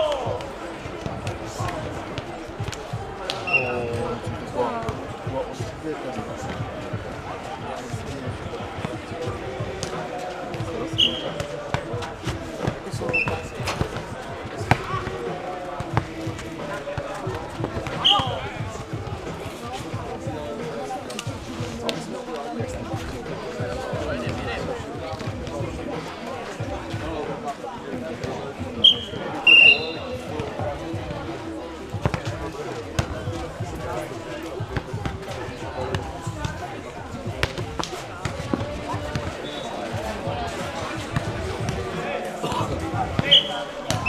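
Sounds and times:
players' voices: 0.0 - 44.0.

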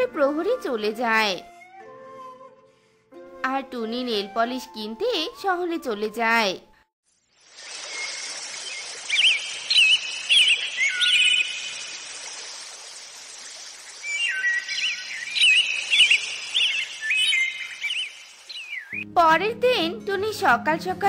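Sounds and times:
outdoor ambient hiss: 7.1 - 19.0
birds chirping and singing: 7.9 - 12.2, 13.6 - 19.2.

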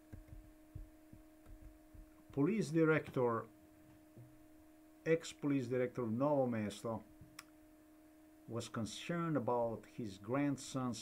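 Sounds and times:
soft low thumps: 0.0 - 3.3
faint low hum: 0.0 - 11.0.

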